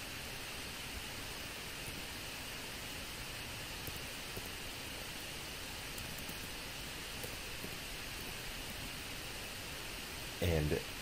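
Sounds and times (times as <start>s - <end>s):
microphone background hiss: 0.0s - 11.0s
keys being typed: 5.9s - 8.9s.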